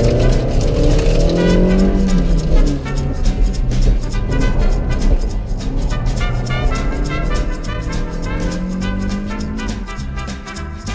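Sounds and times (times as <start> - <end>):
car engine running under load: 0.0 - 10.4
background music: 0.0 - 10.9.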